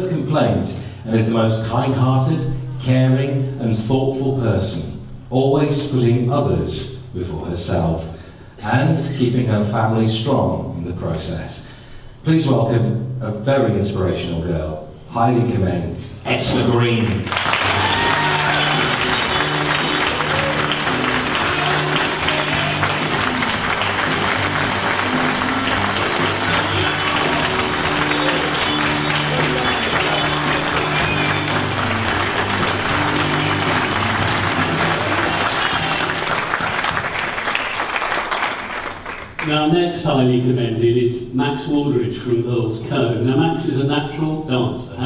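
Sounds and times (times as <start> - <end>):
audience applauding: 17.0 - 39.5
background music: 17.4 - 36.9.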